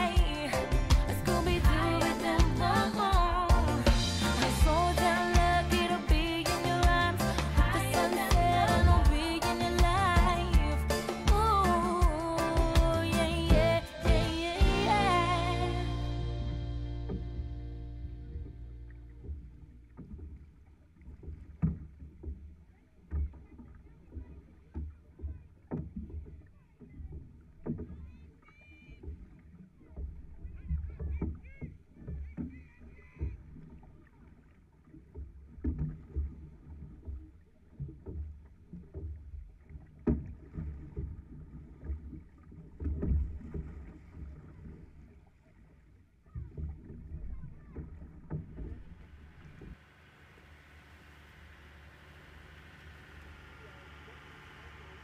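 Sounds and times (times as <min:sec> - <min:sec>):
paddle strokes thumping: 0:00.0 - 0:15.8, 0:18.3 - 0:28.1, 0:34.9 - 0:45.1, 0:46.2 - 0:50.5
water slapping hull: 0:00.0 - 0:55.0.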